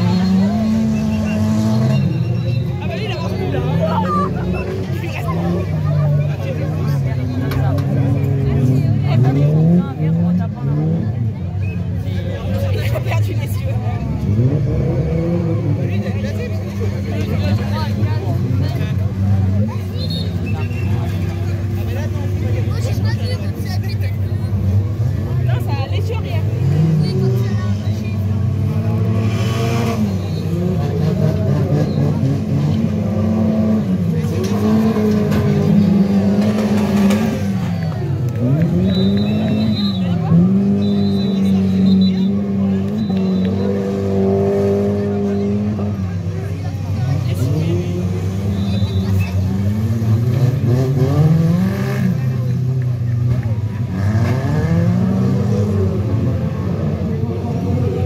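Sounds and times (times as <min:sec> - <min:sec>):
car engines revving: 0:00.0 - 0:58.0.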